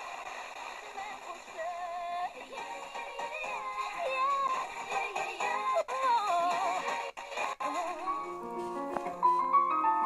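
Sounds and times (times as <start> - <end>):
music with singing over radio: 0.0 - 9.5.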